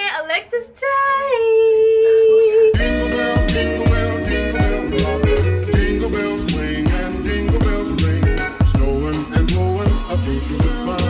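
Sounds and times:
christmas-style music with jingle bells: 0:02.8 - 0:11.0.

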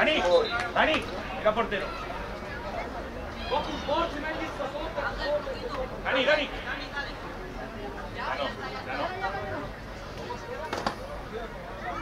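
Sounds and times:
faint chatter: 0:00.0 - 0:12.0.

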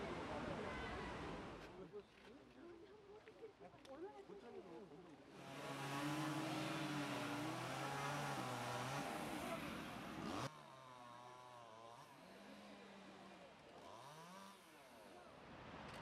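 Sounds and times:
engine idling and revving: 0:05.4 - 0:10.5.

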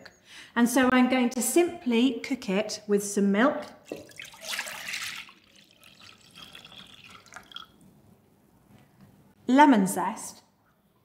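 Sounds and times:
milk pouring into saucepan: 0:03.9 - 0:07.9.

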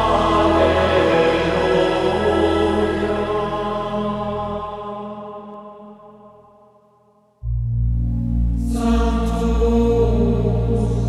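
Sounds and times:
voices chanting a long chord: 0:00.0 - 0:07.0, 0:08.3 - 0:11.0.

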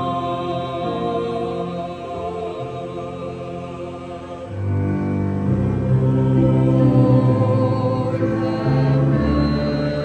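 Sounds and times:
choir singing in harmony: 0:00.0 - 0:10.0.

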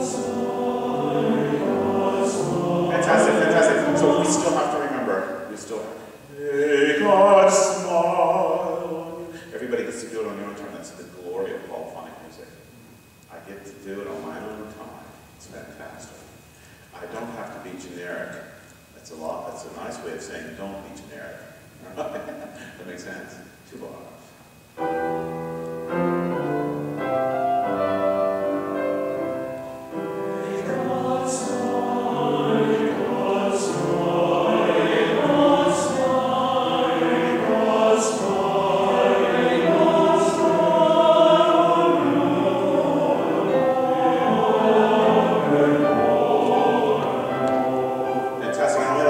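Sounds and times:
men's choir singing: 0:00.0 - 0:05.2, 0:06.3 - 0:09.6, 0:26.3 - 0:49.0
piano chords: 0:00.0 - 0:09.9, 0:24.8 - 0:49.0.

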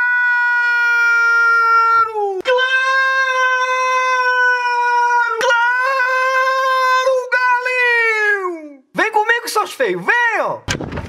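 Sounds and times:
man yelling high-pitched: 0:00.0 - 0:10.6.

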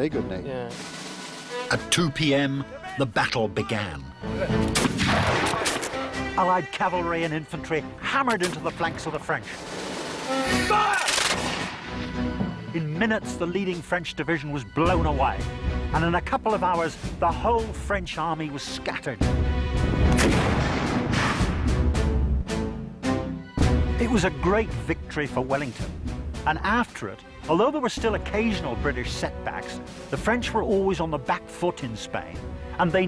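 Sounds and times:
background music: 0:00.0 - 0:33.0
musket volley: 0:04.6 - 0:06.2
gunfire blasts: 0:04.7 - 0:06.1, 0:11.0 - 0:12.0, 0:20.0 - 0:21.7.

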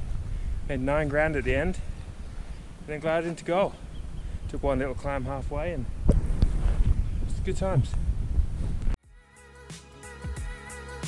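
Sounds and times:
wind buffeting microphone: 0:00.0 - 0:09.0
background music with beat: 0:09.0 - 0:11.0.

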